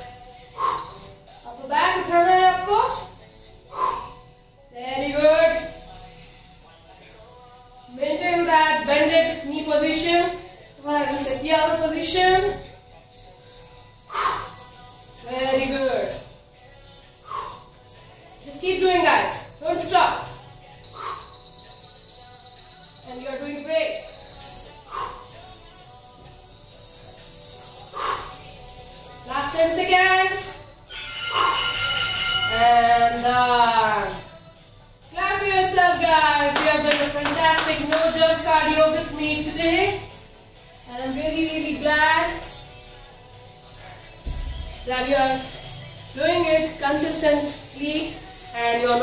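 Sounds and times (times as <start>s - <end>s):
faint background music: 0.0s - 49.0s
handclaps: 36.5s - 38.1s.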